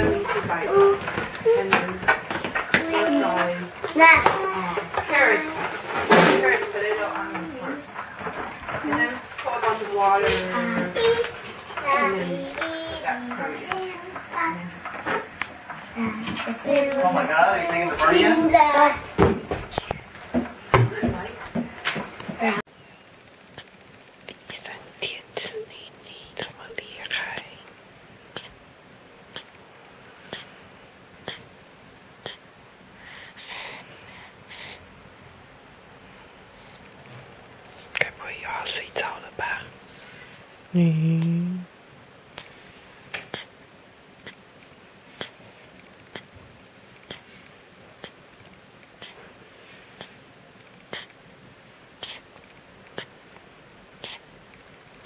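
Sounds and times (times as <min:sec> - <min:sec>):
soft whisper: 0:19.6 - 0:20.1, 0:23.5 - 0:28.6, 0:37.7 - 0:39.8, 0:47.0 - 0:48.2, 0:49.0 - 0:50.2, 0:50.8 - 0:51.2, 0:52.0 - 0:53.2, 0:54.0 - 0:54.4
baby sucking and swallowing: 0:28.3 - 0:28.6, 0:29.3 - 0:30.6, 0:31.2 - 0:31.5, 0:32.2 - 0:32.5, 0:42.3 - 0:43.6, 0:44.2 - 0:51.3, 0:51.9 - 0:53.4, 0:54.0 - 0:55.0.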